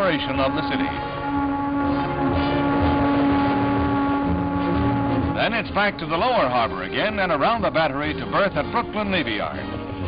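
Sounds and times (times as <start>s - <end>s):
lower ship horn: 0.0s - 10.0s
ship horn long blast: 0.0s - 10.0s.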